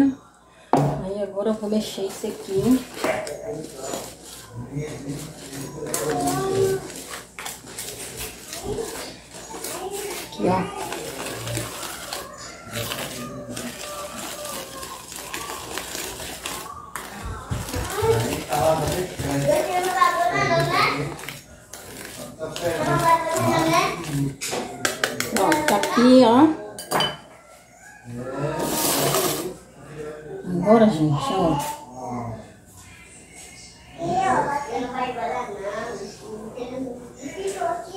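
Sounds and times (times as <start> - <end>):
whisk beating batter in plastic bowl: 1.7 - 26.3.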